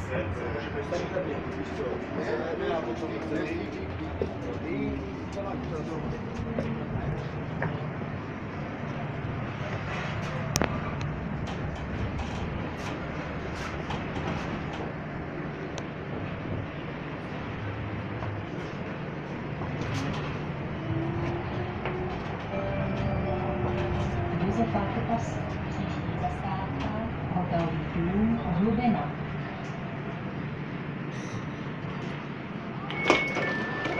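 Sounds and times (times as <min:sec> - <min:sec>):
tram rolling rumble: 0:00.0 - 0:33.9.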